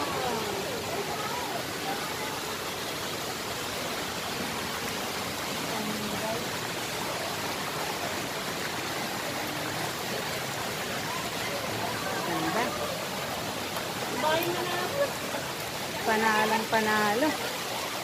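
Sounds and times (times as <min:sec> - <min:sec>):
faint voices: 0:00.0 - 0:18.0
fountain water splashing: 0:00.0 - 0:18.0.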